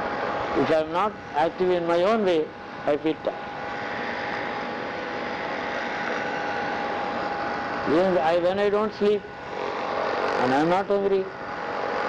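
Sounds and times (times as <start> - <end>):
background hiss and hum: 0.0 - 12.0.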